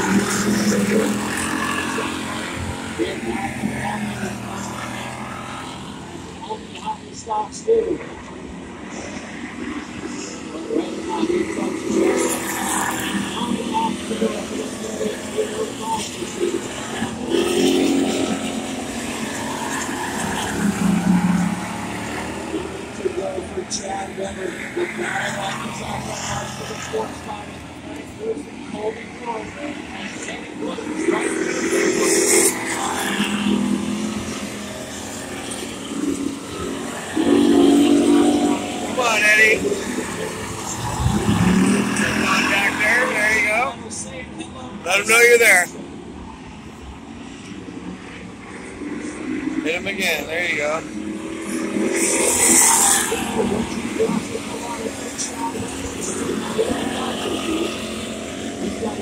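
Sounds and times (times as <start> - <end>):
indistinct crowd voices: 0.0 - 59.0
race car engines: 0.0 - 59.0
announcer over loudspeaker: 19.3 - 33.8, 35.5 - 43.9, 44.8 - 45.8.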